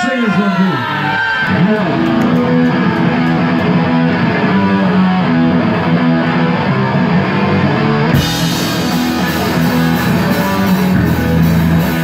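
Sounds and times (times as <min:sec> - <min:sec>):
electric guitar and bass riff: 0:00.8 - 0:12.0
drums and crashing cymbals: 0:08.2 - 0:12.0.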